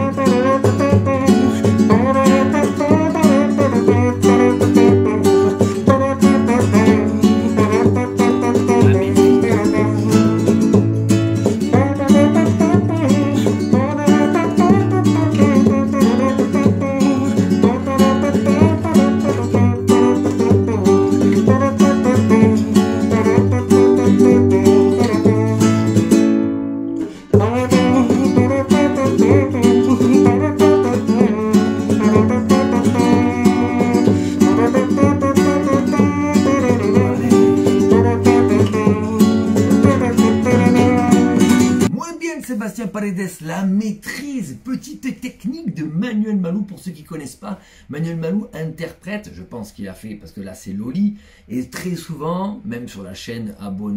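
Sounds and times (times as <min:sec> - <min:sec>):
person humming: 0:00.0 - 0:26.1, 0:27.0 - 0:42.2
flamenco guitar strummed: 0:00.0 - 0:42.1.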